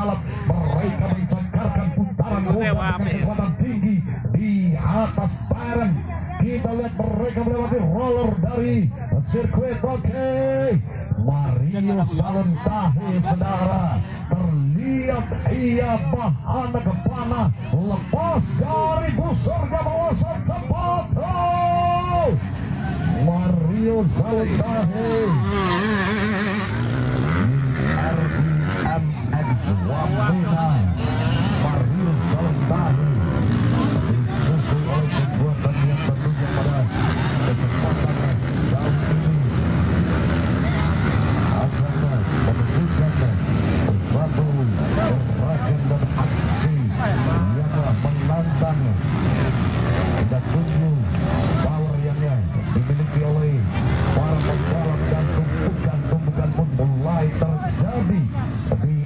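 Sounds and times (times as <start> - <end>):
dirt bike engines revving: 0.0 - 59.0.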